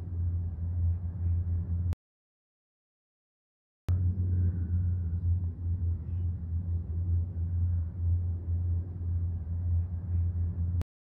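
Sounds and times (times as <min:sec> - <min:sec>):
aircraft engines droning overhead: 0:00.0 - 0:02.0, 0:03.9 - 0:10.8.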